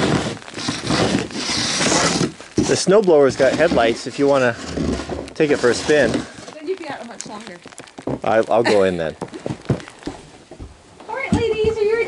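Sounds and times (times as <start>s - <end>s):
snow shovel scraping: 0.0s - 7.0s.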